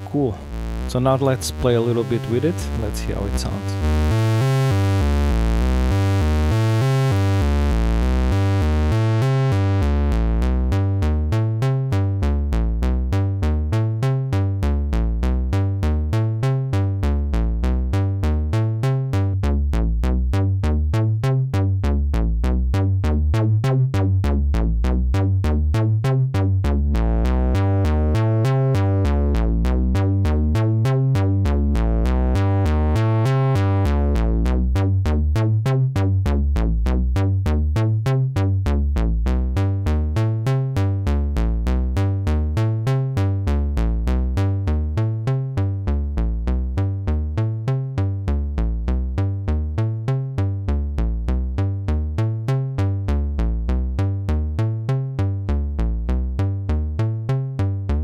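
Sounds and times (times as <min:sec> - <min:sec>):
synthesizer bass notes: 0:00.0 - 0:58.0.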